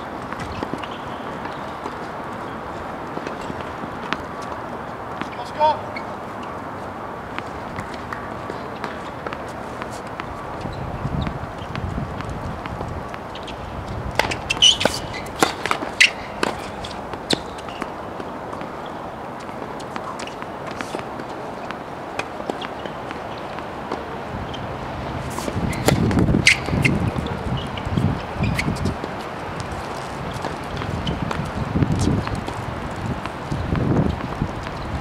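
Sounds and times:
tennis ball bouncing: 0:00.0 - 0:34.8
racquets striking ball: 0:00.0 - 0:35.0.

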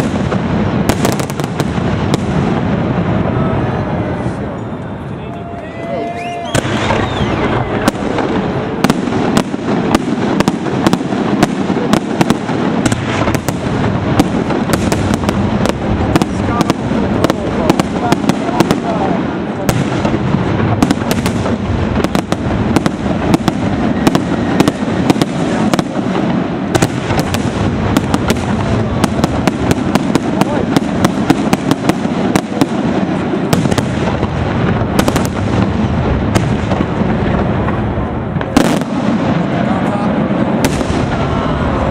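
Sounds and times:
fireworks bursting: 0:00.0 - 0:41.9
fireworks crackle: 0:00.0 - 0:41.9.

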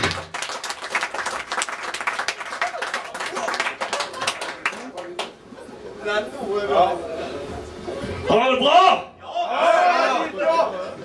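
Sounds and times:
audience clapping: 0:00.0 - 0:05.5.

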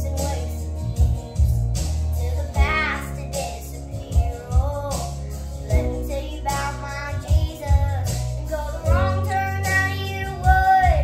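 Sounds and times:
girl singing: 0:00.0 - 0:11.0
instrumental accompaniment: 0:00.0 - 0:11.0.

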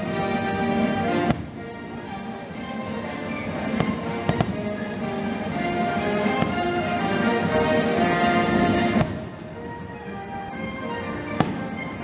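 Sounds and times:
music with sustained notes: 0:00.0 - 0:12.0.

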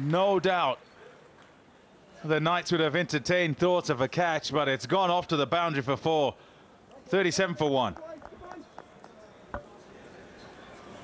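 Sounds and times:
faint distant voices: 0:06.8 - 0:11.0.

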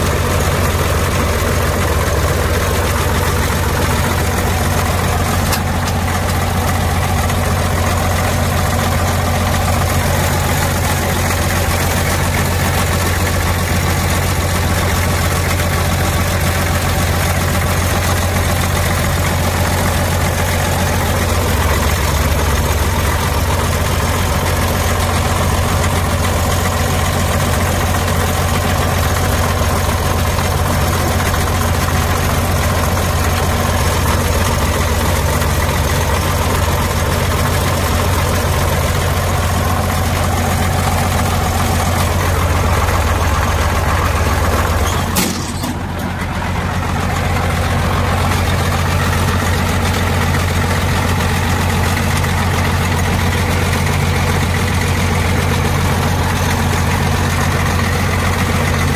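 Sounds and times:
diesel engine idling: 0:00.0 - 0:58.9.

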